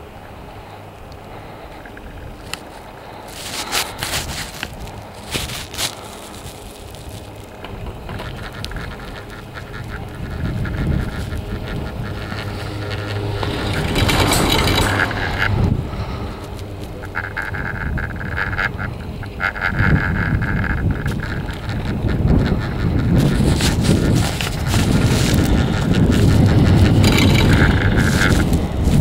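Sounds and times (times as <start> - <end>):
chairlift rope rumble: 0.0 - 29.0.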